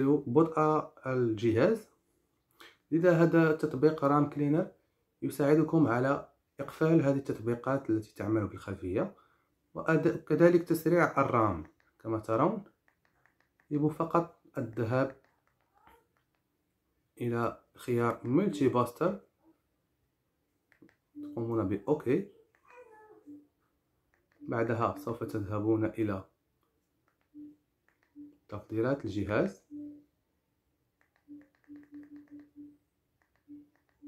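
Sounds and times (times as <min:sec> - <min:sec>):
man speaking: 0:00.0 - 0:02.0, 0:02.6 - 0:12.8, 0:13.7 - 0:15.3, 0:17.2 - 0:19.3, 0:21.2 - 0:22.4, 0:24.4 - 0:26.4, 0:28.3 - 0:29.7.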